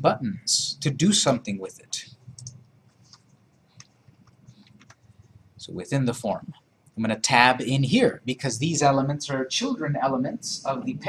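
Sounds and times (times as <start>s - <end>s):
faint low room hum: 0.0s - 11.0s
keyboard and mouse clicks: 2.3s - 5.1s.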